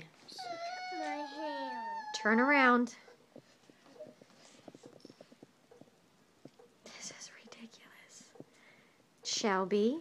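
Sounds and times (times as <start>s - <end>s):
girl whimpering: 0.4s - 2.3s.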